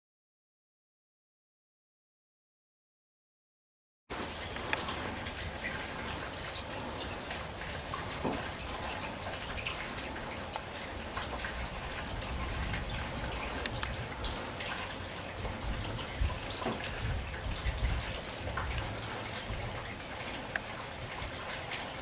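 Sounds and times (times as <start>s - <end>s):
steady rain falling: 4.1s - 22.0s
raindrop clicks: 4.2s - 5.8s, 7.3s - 21.5s.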